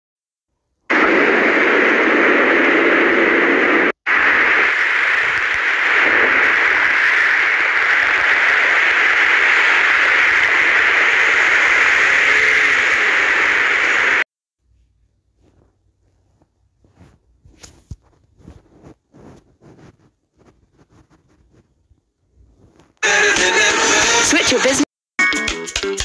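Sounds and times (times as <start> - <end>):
radio static hiss: 0.9 - 14.3, 18.0 - 21.7, 22.6 - 24.9.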